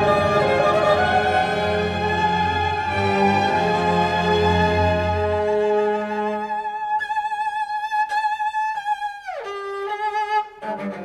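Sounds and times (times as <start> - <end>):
low orchestral notes: 0.0 - 6.8.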